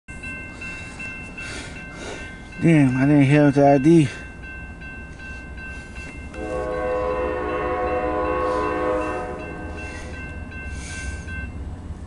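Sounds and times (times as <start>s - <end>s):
high-pitched crossing bell tones: 0.1s - 11.6s
freight train rumbling past: 0.1s - 12.0s.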